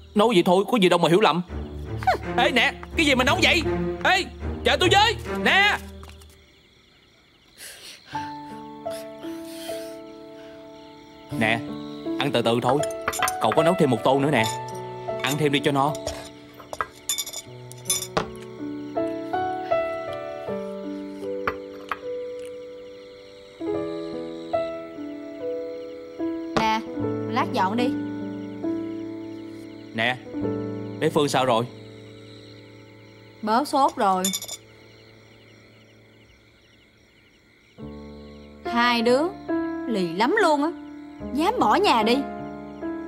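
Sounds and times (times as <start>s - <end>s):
soft background music: 0.0s - 6.8s, 8.2s - 43.0s
crickets chirping: 0.0s - 43.0s
chopsticks clinking on ceramic bowls: 12.6s - 18.5s, 33.8s - 34.6s.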